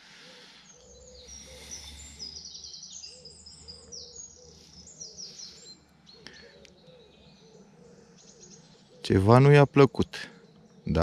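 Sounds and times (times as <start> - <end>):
bird cooing: 0.0 - 9.5
songbirds chirping and trilling: 0.0 - 11.0.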